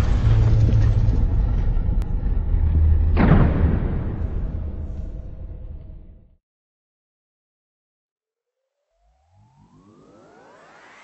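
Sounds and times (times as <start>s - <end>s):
deep cinematic rumble: 0.0s - 6.4s.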